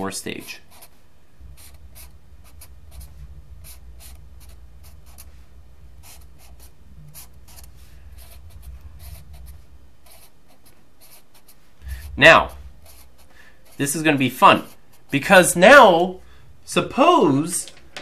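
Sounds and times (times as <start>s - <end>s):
low steady hum: 0.0s - 18.0s
felt-tip marker drawing on paper: 0.4s - 5.4s, 6.0s - 15.3s.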